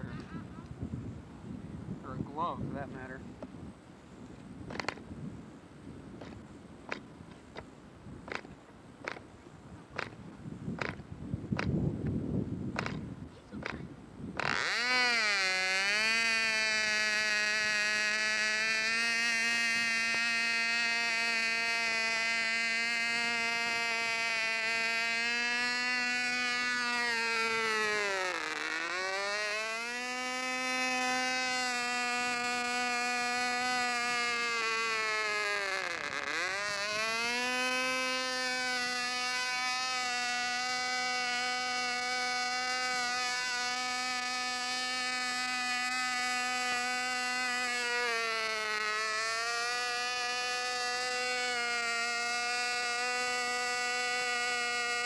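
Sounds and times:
model airplane engine buzzing: 0.0s - 55.0s
propeller flip clicks: 4.3s - 5.1s, 6.2s - 9.3s, 9.9s - 10.2s, 10.8s - 12.2s, 12.8s - 15.0s.

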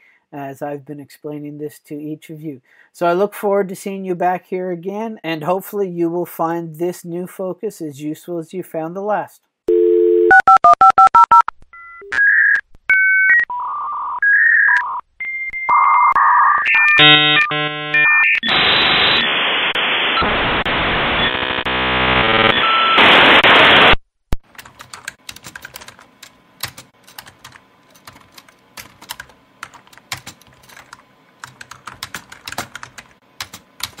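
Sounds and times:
dial-up modem tones and hiss: 9.7s - 11.5s, 12.1s - 24.0s
keyboard typing: 24.4s - 34.0s.

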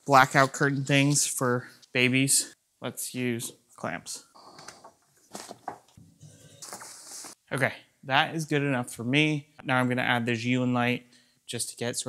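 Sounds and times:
fabric rustling: 4.4s - 7.4s.

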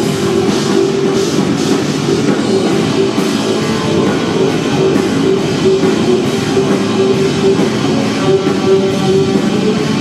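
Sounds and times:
drum kit with cymbals: 0.0s - 10.0s
electric guitar: 0.0s - 10.0s
keyboard: 0.0s - 10.0s.

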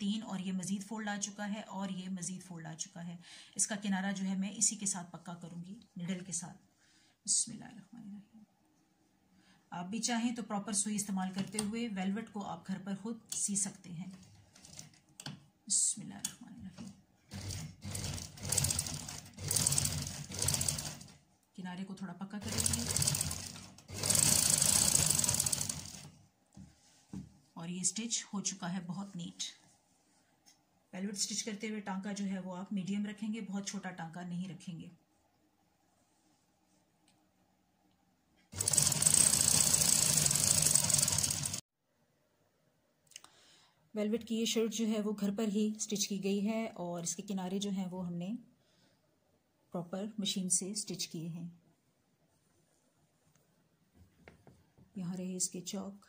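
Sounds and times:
sewing machine stitching: 14.5s - 15.0s, 17.3s - 21.2s, 22.4s - 26.2s, 38.5s - 41.6s.

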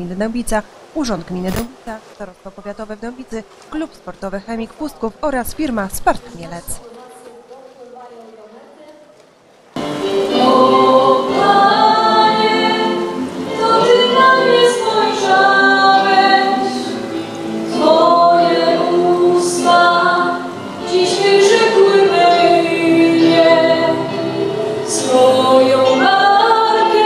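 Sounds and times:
girl singing into a microphone: 10.3s - 16.9s, 17.7s - 27.0s.

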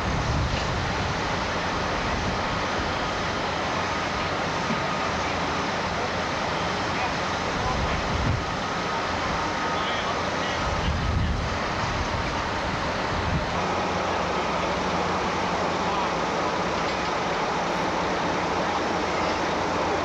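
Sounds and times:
faint steady whines: 0.0s - 20.0s
heavy machinery and diesel engines: 0.0s - 20.0s.

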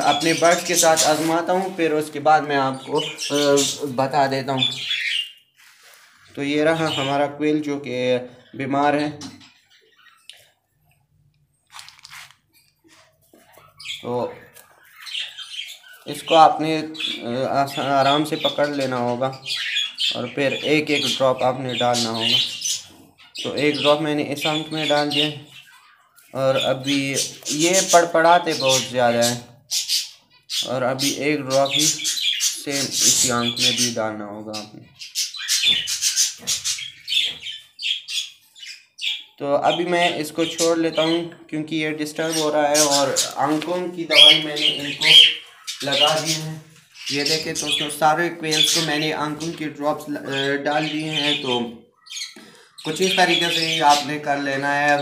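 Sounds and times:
quail squawking: 0.0s - 7.2s, 13.4s - 41.2s, 42.1s - 55.0s.

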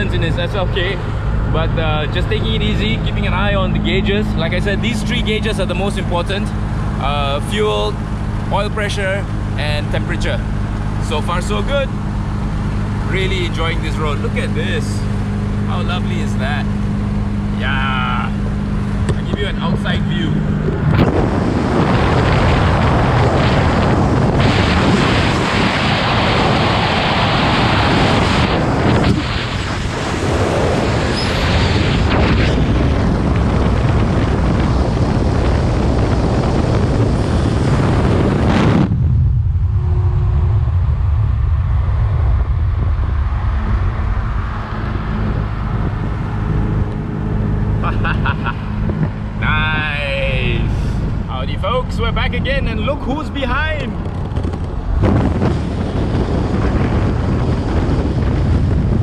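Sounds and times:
low drone of engine and tyres: 0.0s - 59.0s
road noise: 0.0s - 59.0s
wind rushing over camera: 10.2s - 59.0s.

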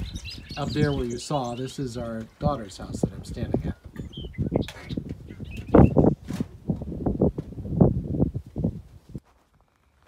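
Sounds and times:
wind gusting over microphone: 0.0s - 9.2s.

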